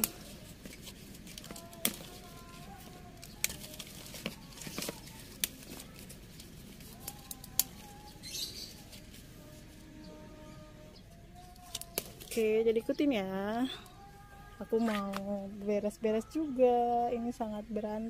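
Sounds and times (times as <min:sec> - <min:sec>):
leaf stalks snapping: 0:00.0 - 0:09.2, 0:11.4 - 0:12.5
foliage rustling: 0:00.0 - 0:15.8.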